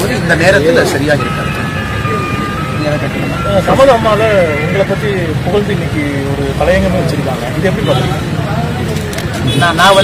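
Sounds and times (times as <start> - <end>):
street traffic rumble: 0.0 - 10.0
thin high tone: 1.1 - 5.6
man's voice: 2.2 - 6.9.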